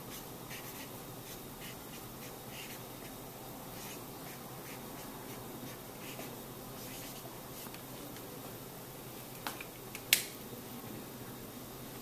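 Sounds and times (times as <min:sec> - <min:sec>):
marker scratching on paper: 0:00.1 - 0:03.1, 0:03.8 - 0:07.7.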